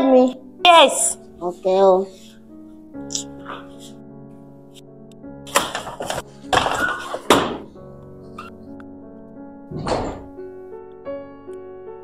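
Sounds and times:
background music sustained notes: 0.0 - 12.0
wooden door banging shut: 5.5 - 7.8, 9.7 - 10.4.

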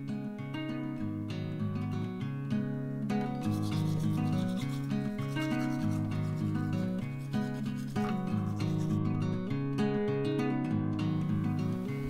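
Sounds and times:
strummed acoustic guitar music: 0.0 - 12.0
toothbrush scrubbing teeth: 3.5 - 8.9.

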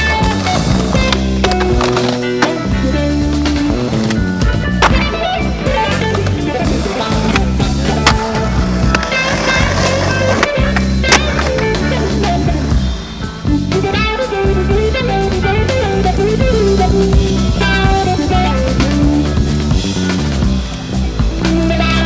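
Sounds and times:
skateboard popping and landing: 0.0 - 2.8, 3.4 - 12.5
music playing: 0.0 - 22.0.

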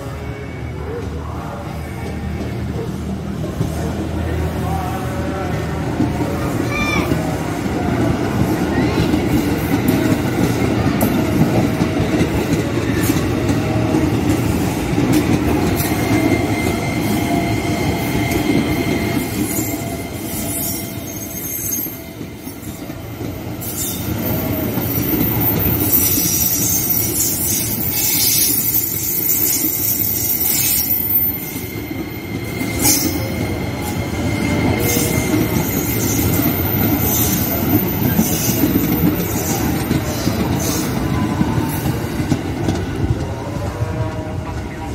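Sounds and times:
train wheels rumbling on rail: 0.0 - 44.9
high wheel squeal: 15.7 - 41.9.

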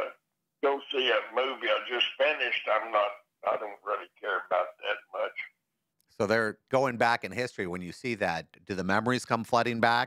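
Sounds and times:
man talking: 0.0 - 10.0.

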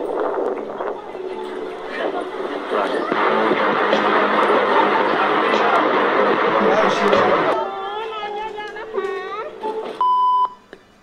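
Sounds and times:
person speaking: 1.2 - 9.6.

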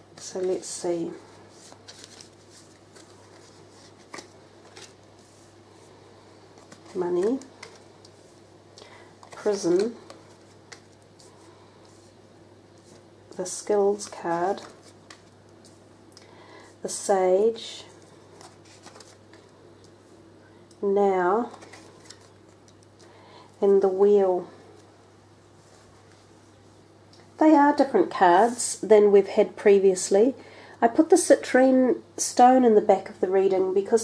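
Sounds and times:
steady low hum: 0.0 - 34.0
cards sliding and tapping: 1.5 - 5.4, 6.6 - 8.2
cards clicking and rustling: 1.6 - 5.0, 6.6 - 8.2, 9.2 - 11.3, 18.4 - 19.5, 21.5 - 22.9.

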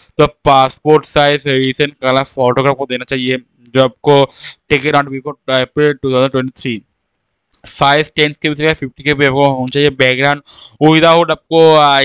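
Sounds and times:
man talking: 0.0 - 6.9, 7.6 - 12.0.

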